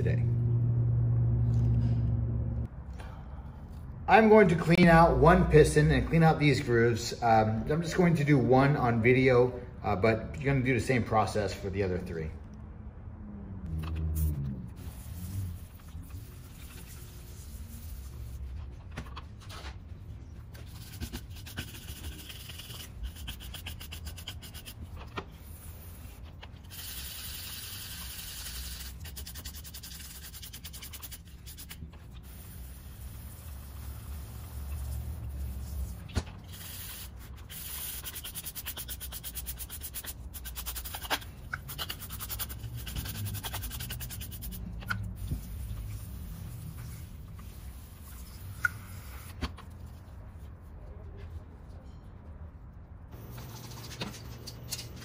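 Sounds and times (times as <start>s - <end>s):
brush scrubbing metal: 14.2s - 18.6s, 20.5s - 50.2s.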